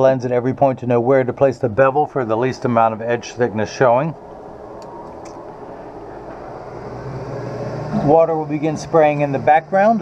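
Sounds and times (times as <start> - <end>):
low hum: 2.1 - 8.8.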